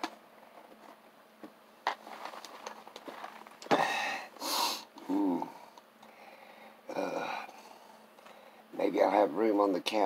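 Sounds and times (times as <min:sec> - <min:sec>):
plastic cup handling: 0:01.9 - 0:03.8
man breathing out: 0:03.7 - 0:08.6
person swallowing: 0:05.0 - 0:05.6.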